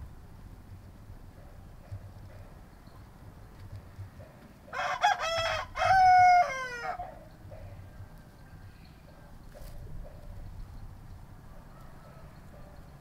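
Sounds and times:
rooster crowing: 0:04.7 - 0:07.2, 0:11.4 - 0:13.0.

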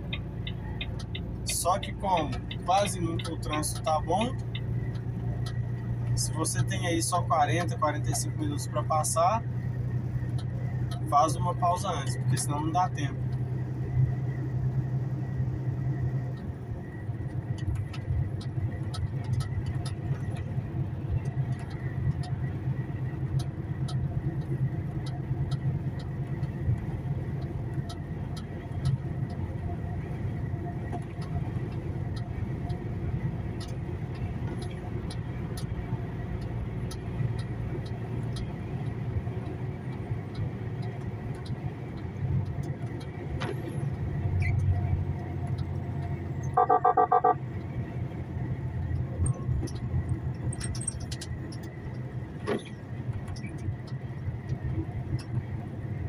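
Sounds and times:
truck engine and road rumble: 0:00.0 - 0:56.0
short loud pitched tone: 0:46.6 - 0:47.4.

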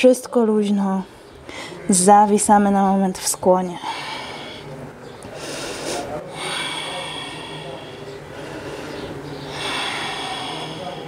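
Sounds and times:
woman breathing heavily: 0:01.4 - 0:01.9, 0:03.8 - 0:11.0.

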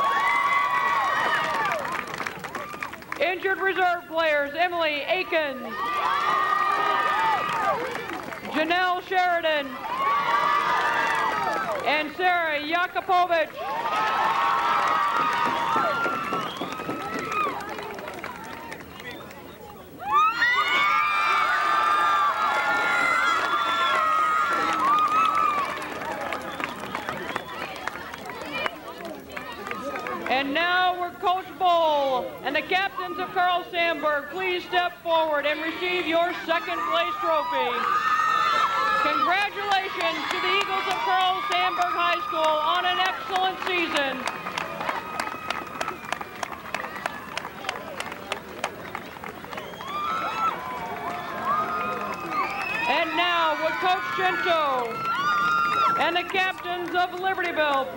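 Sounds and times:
crowd chatter: 0:00.0 - 0:57.9
group hand clapping: 0:00.7 - 0:03.3, 0:07.1 - 0:08.6, 0:10.6 - 0:11.9, 0:13.5 - 0:19.5, 0:22.5 - 0:30.3, 0:39.3 - 0:57.9
girls shouting and cheering: 0:20.0 - 0:26.0, 0:31.7 - 0:45.6, 0:49.9 - 0:57.9.

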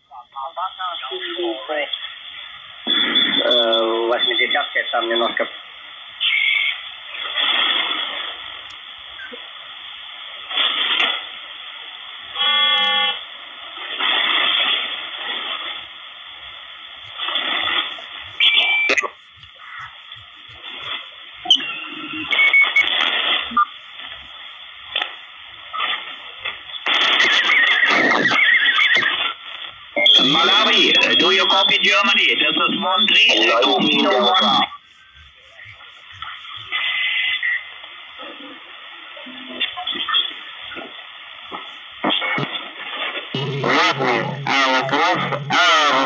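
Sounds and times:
radio band hiss: 0:00.0 - 0:46.0
garbled radio voices: 0:16.2 - 0:25.2, 0:25.8 - 0:38.6, 0:43.4 - 0:46.0.

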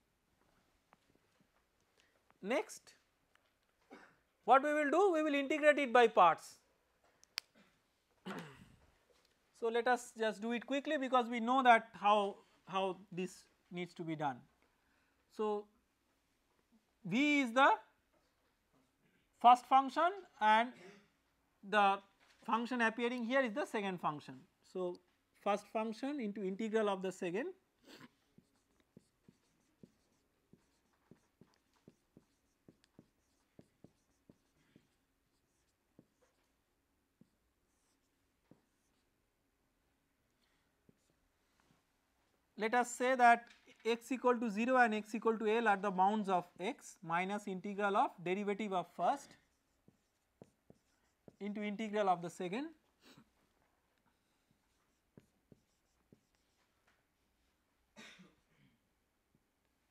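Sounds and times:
marker pen writing on whiteboard: 0:25.6 - 0:39.4, 0:40.8 - 0:41.4, 0:46.6 - 0:57.6.

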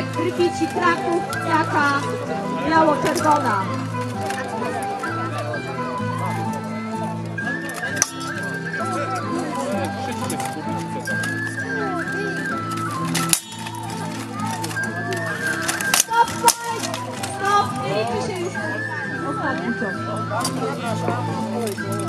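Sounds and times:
background music: 0:00.0 - 0:22.0.

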